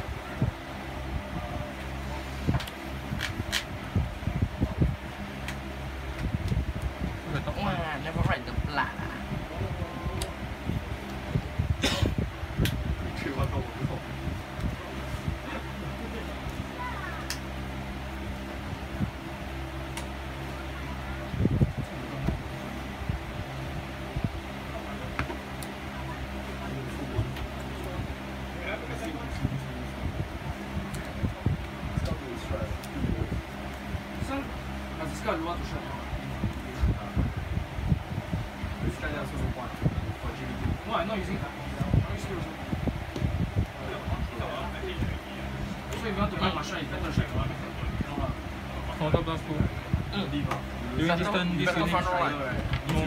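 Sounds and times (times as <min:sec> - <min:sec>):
fan humming: 0:00.0 - 0:53.0.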